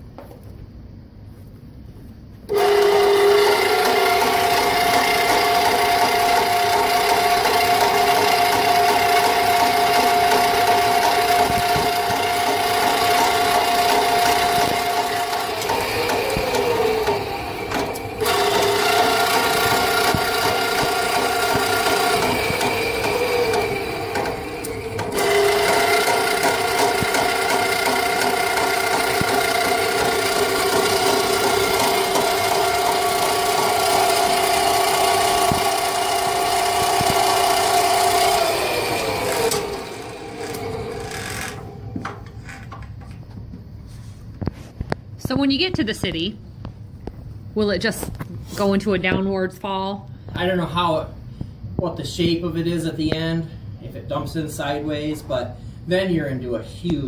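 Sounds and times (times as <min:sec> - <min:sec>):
drain snake motor spinning: 0:02.5 - 0:42.6.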